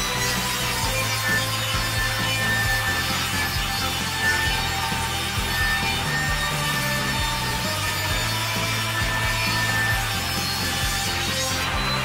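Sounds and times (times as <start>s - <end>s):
table saw cutting wood: 0.0s - 12.0s.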